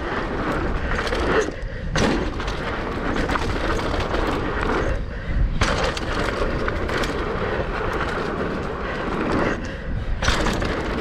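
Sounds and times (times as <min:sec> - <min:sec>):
bike rattling clicks: 0:00.0 - 0:11.0
bike tyres rumbling on dirt: 0:00.0 - 0:11.0.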